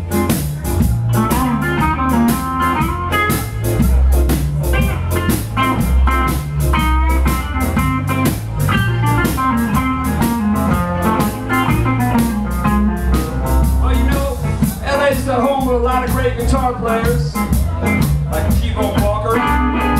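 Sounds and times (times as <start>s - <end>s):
electric guitar lead lines: 0.0s - 14.7s, 18.9s - 19.9s
bass notes: 0.0s - 19.9s
drum kit beat: 0.0s - 19.9s.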